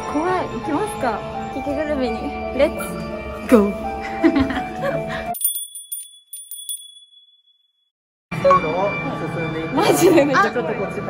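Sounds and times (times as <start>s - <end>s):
tinkling bell chime: 5.3s - 7.8s.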